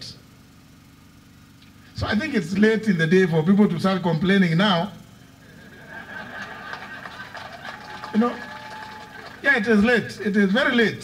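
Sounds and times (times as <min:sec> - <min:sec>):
murmur of seated crowd: 0:05.4 - 0:09.5.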